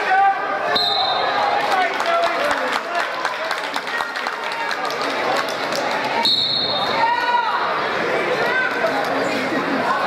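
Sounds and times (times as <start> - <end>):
spectator chatter: 0.0 - 10.0
referee whistle blast: 0.7 - 1.3, 6.2 - 7.0.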